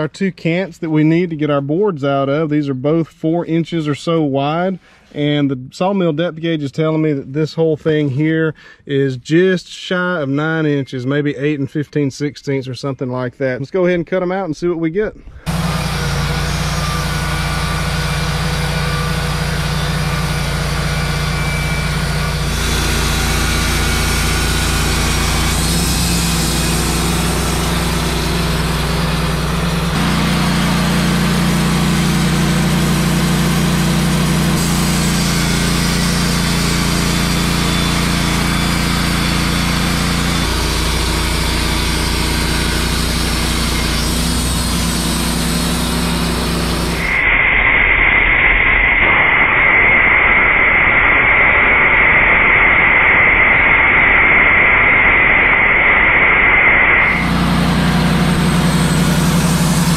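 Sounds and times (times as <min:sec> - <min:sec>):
gasoline engine running: 0:15.4 - 0:47.1, 0:57.0 - 0:59.9
band blade sawing wood: 0:20.8 - 0:33.1, 0:34.4 - 0:47.1, 0:57.1 - 0:59.9.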